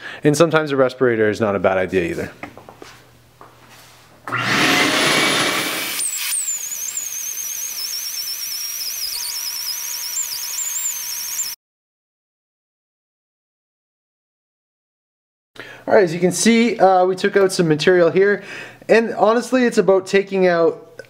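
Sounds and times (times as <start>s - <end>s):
die grinder whining on metal: 4.3s - 11.6s.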